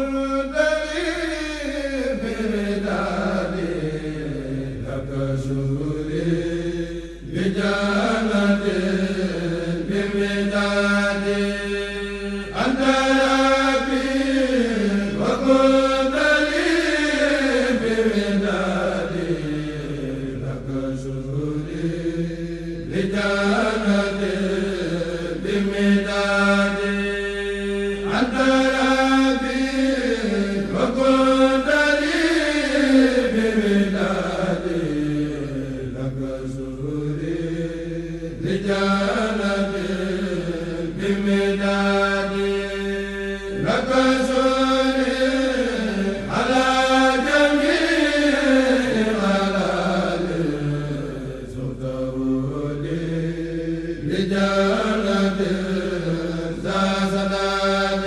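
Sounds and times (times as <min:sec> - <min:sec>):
men chanting in unison: 0:00.0 - 0:58.0.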